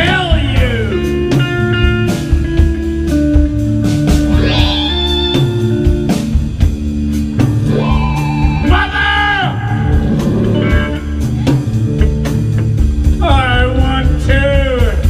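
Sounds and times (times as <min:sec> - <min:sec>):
bass guitar: 0:00.0 - 0:15.0
combo organ chords: 0:00.0 - 0:15.0
drums: 0:00.0 - 0:15.0
electric guitar bent notes: 0:04.0 - 0:12.8.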